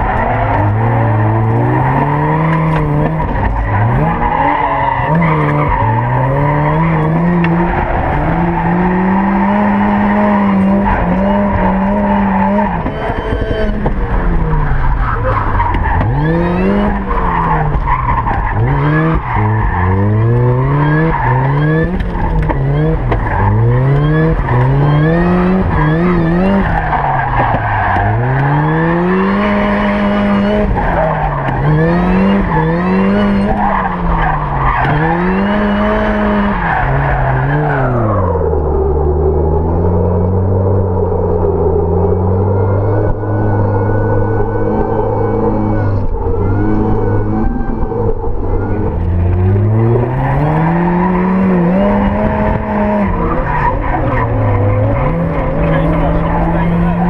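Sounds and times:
car engine revving: 0.0 - 57.0.

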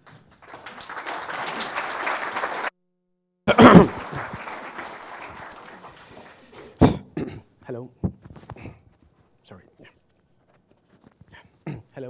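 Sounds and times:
man coughing: 3.5 - 4.1, 6.6 - 7.5, 11.7 - 12.0.

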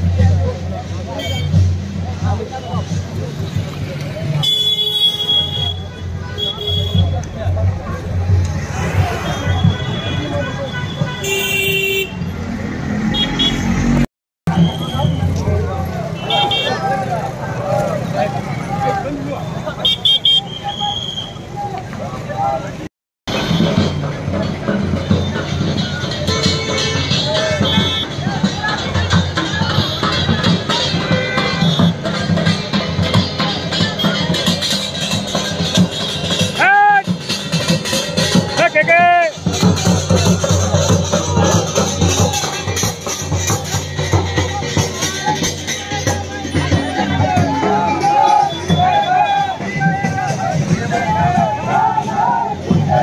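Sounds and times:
crowd of overlapping voices: 0.0 - 13.2, 14.5 - 53.0
vehicle horn beeping: 1.2 - 1.6, 4.4 - 7.1, 9.2 - 12.3, 13.1 - 13.8, 14.5 - 15.4, 16.2 - 16.8, 19.5 - 21.4, 26.6 - 28.2, 30.8 - 32.0
large drum beating: 23.3 - 53.0.

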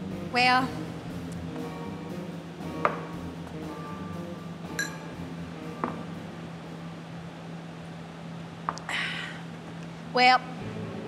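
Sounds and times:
bar room tone hum and hiss: 0.0 - 11.0.

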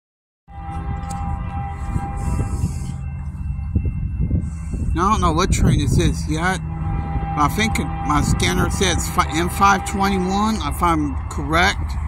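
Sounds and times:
distant locomotive air horn: 0.5 - 12.0
low rumble: 0.5 - 12.0.

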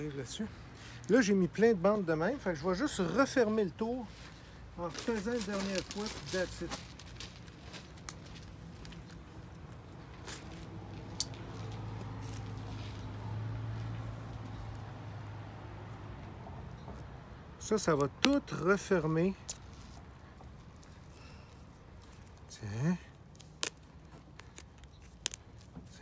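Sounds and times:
plastic film rustling: 4.2 - 9.3
plastic film crackling: 4.8 - 12.9, 18.2 - 26.0
plastic stretch film snapping: 23.2 - 26.0.

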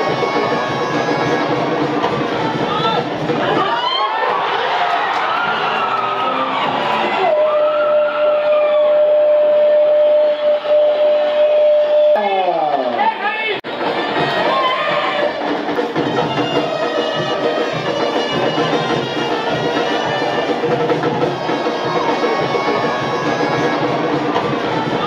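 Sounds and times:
background music: 0.0 - 25.0
crowd noise: 0.0 - 25.0.

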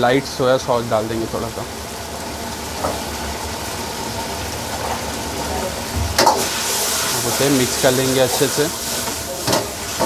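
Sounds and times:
gas burner roaring: 0.0 - 10.0
sauce bubbling and sizzling: 0.0 - 10.0.

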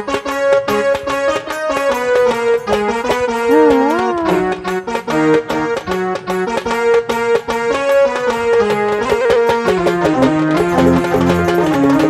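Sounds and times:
electronic keyboard melody: 3.5 - 4.7
drum beat with tabla-like hits: 5.8 - 12.0.

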